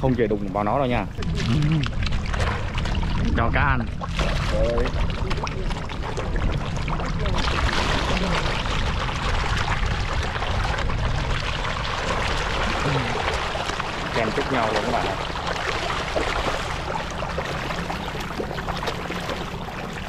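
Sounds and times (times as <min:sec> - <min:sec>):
fish splashing at water surface: 0:01.0 - 0:20.0.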